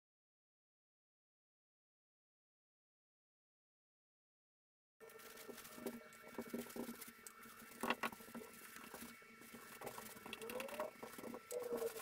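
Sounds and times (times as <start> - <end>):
paintbrush dabbing and scraping: 5.1 - 12.0.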